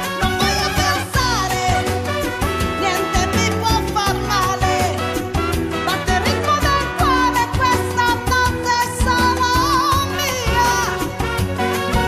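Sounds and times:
latin-style bass and percussion: 0.0s - 12.0s.

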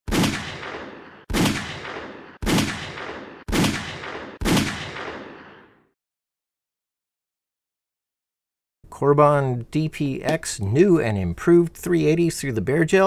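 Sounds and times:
pistol shots with echo: 0.1s - 5.8s.

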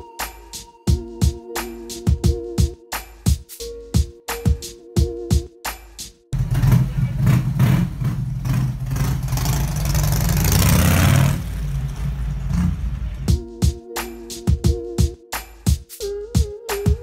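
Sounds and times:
motorcycle passing: 6.4s - 13.3s.

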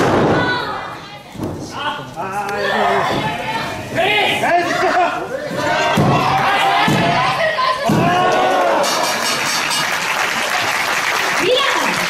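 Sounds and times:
people shouting: 4.0s - 9.2s.

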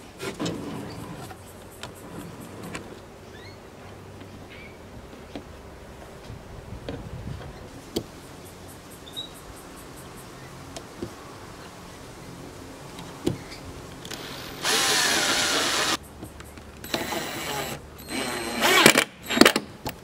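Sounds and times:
cordless drill driving a screw: 14.1s - 16.0s, 16.8s - 19.7s
short driver bursts: 16.9s - 19.7s.

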